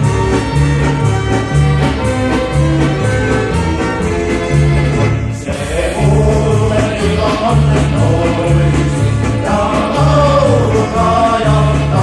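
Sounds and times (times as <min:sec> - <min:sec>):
bass stepping between notes: 0:00.0 - 0:12.0
folk band playing: 0:00.0 - 0:12.0
voices singing: 0:05.3 - 0:12.0.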